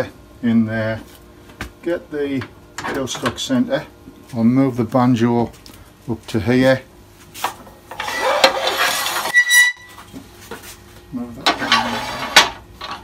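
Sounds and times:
metal scraping along lathe bed: 7.9 - 9.8, 11.5 - 12.5.

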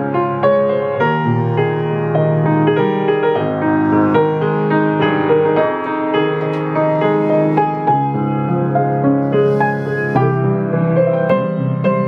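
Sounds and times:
piano playing chords and melody: 0.0 - 12.0.

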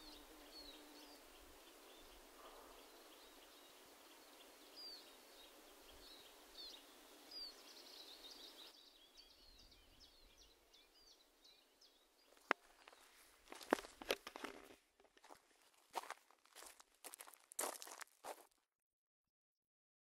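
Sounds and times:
small birds chirping: 0.0 - 18.4.

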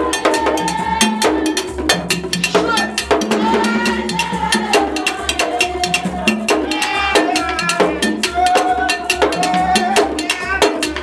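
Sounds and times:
women singing a chant: 0.0 - 1.9, 2.5 - 11.0
hand drums beating fast: 0.0 - 11.0.

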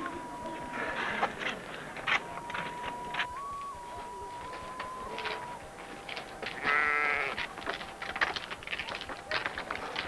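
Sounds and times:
lamb bleating: 6.6 - 7.4.

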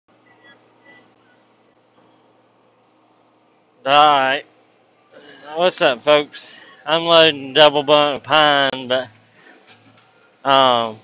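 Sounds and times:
faint bird chirps: 0.1 - 3.6
low steady hum: 0.1 - 11.0
rising whistled bird call: 2.8 - 3.4
man's voice: 5.4 - 9.1.

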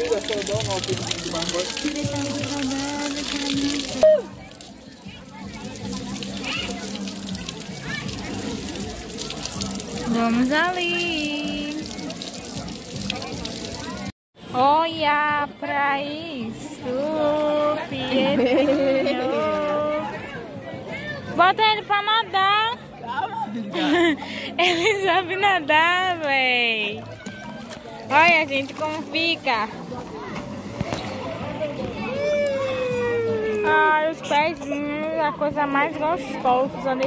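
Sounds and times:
faint voices: 0.0 - 14.1, 25.8 - 37.0
shower water spattering: 0.0 - 14.1
background music: 0.0 - 37.0.

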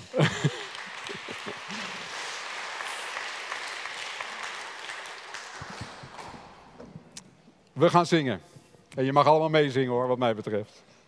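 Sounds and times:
congregation clapping: 0.0 - 7.2.

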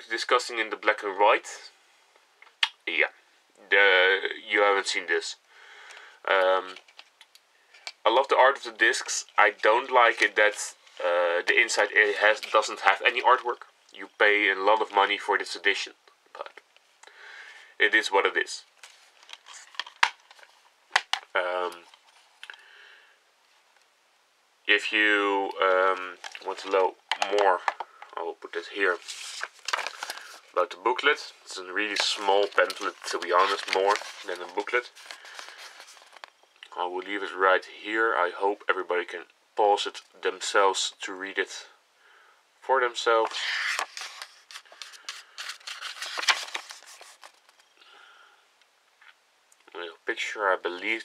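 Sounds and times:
paper rustling: 8.9 - 13.6, 18.8 - 22.4, 25.8 - 27.7, 28.5 - 36.4, 43.2 - 47.7.

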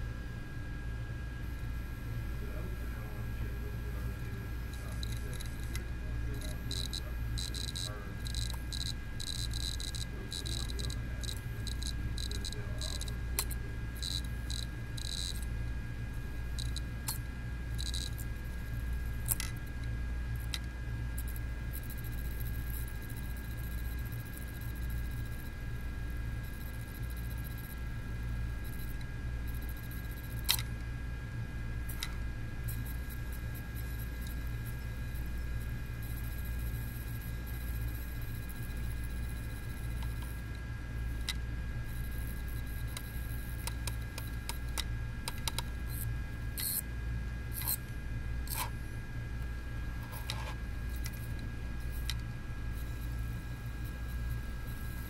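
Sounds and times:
hard drive spinning hum and whine: 0.0 - 55.0
hard drive head clicking: 4.8 - 15.5, 16.5 - 17.2, 30.3 - 30.7, 42.1 - 46.0.

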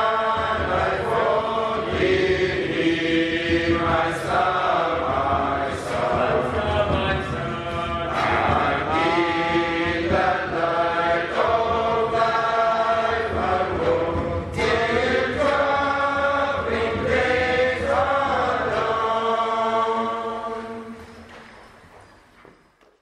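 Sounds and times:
choir singing long notes: 0.0 - 21.4.

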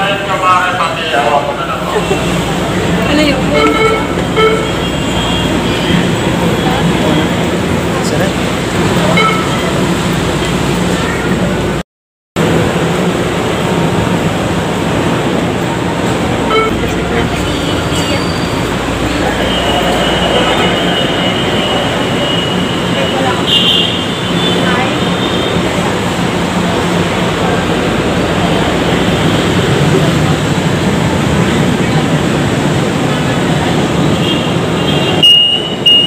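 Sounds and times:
train running noise with hum: 0.0 - 11.8, 12.4 - 36.0
wheels squealing: 16.5 - 23.5.

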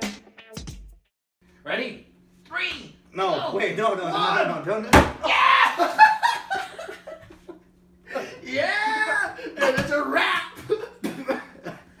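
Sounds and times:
man coughing: 10.6 - 11.9.

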